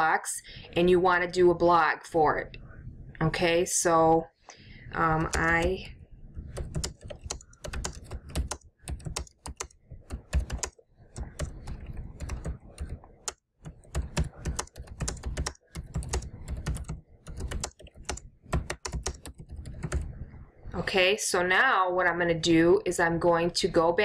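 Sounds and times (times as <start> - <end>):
typing on computer keyboard: 5.2 - 20.2.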